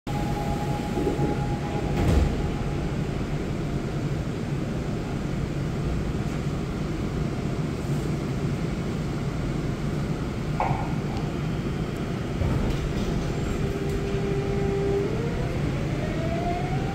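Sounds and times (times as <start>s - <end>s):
subway car hum and rumble: 0.1s - 16.9s.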